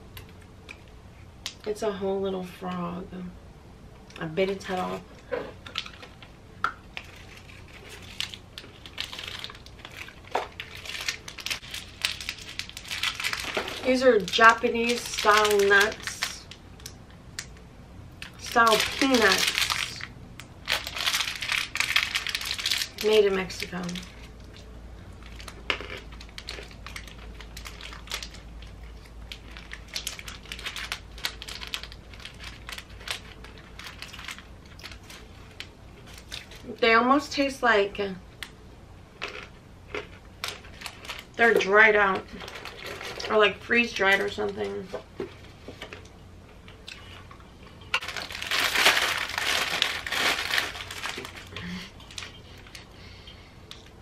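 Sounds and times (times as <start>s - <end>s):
plastic wrappers crinkling: 4.4s - 17.5s, 18.2s - 36.7s, 39.2s - 46.1s, 48.0s - 53.0s.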